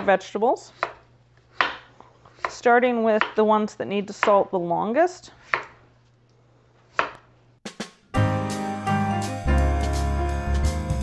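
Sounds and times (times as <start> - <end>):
drum hits: 7.6 - 11.0
background music: 7.7 - 11.0.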